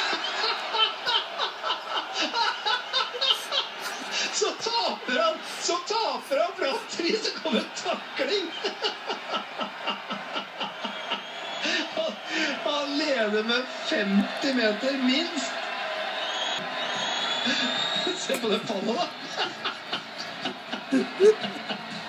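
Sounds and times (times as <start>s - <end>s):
men laughing hard: 0.0s - 12.7s, 17.4s - 22.0s.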